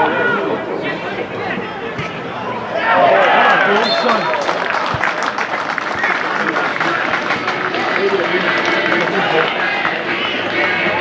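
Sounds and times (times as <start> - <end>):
overlapping indistinct voices: 0.0 - 11.0.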